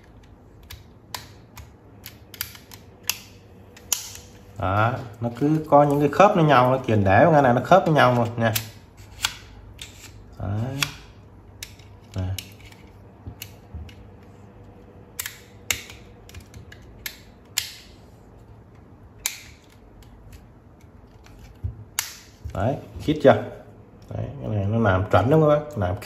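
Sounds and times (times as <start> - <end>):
plastic parts clicking together: 0.0 - 4.5.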